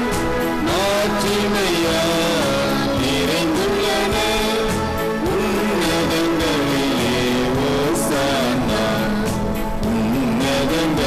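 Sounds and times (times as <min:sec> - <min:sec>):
devotional music: 0:00.0 - 0:11.0.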